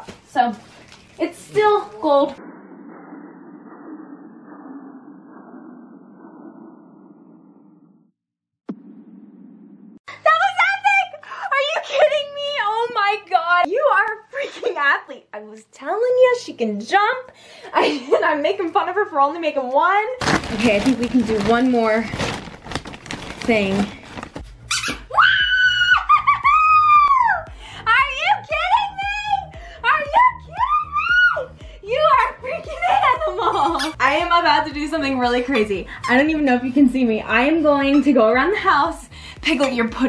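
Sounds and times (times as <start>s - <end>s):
low dull rumble: 1.9s - 10.0s
woman squealing with excitement: 25.1s - 27.4s, 30.6s - 31.5s.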